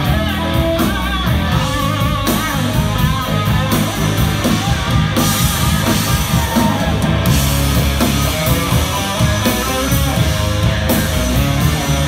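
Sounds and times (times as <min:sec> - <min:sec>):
bass guitar: 0:00.0 - 0:12.0
drum kit with cymbals: 0:00.0 - 0:12.0
electric guitar: 0:00.0 - 0:12.0.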